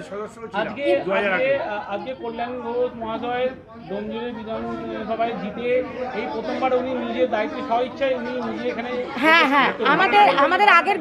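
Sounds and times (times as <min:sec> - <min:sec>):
several people talking: 0:00.0 - 0:11.0.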